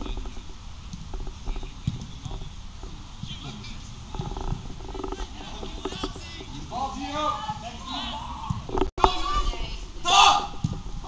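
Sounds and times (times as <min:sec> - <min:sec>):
low rumble: 0:00.0 - 0:03.1
players shouting: 0:05.2 - 0:10.7.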